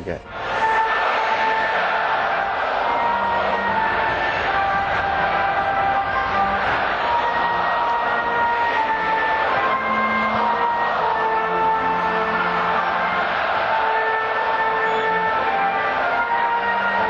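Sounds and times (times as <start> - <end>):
anthem over sound system: 0.0 - 17.0.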